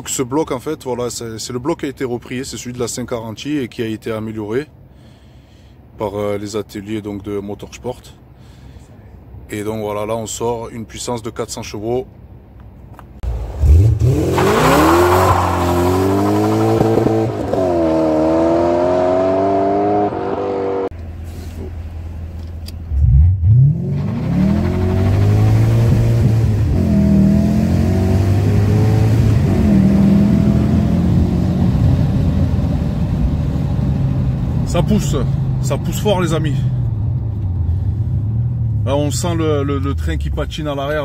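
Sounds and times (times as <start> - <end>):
car accelerating and shifting gears: 13.2 - 20.9, 22.9 - 39.0
car engine revving: 13.2 - 20.9, 22.9 - 39.2.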